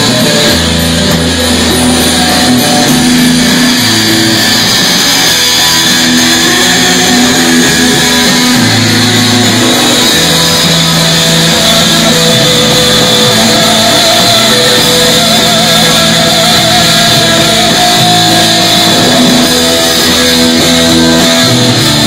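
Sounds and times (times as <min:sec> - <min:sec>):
drums: 0:00.0 - 0:22.0
electric bass: 0:00.0 - 0:22.0
electric guitar: 0:00.0 - 0:22.0.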